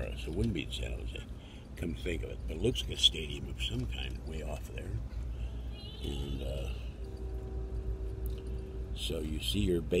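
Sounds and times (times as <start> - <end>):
flat even hum: 0.3 - 10.0.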